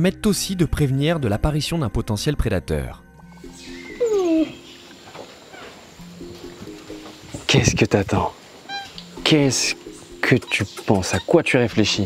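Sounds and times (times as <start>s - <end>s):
background music low notes: 0.0s - 12.0s
monkey falling cry: 4.0s - 6.0s, 8.6s - 9.1s.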